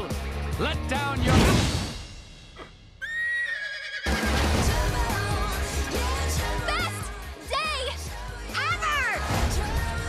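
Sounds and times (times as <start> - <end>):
animated horse whinnying: 3.0 - 4.4.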